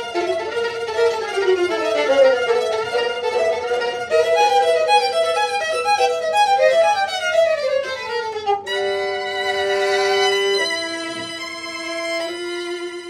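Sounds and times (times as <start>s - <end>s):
violin duet: 0.0s - 13.0s.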